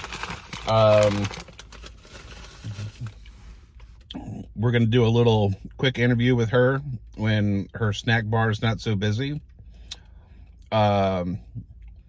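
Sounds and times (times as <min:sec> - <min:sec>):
low hum inside car: 0:00.0 - 0:12.0.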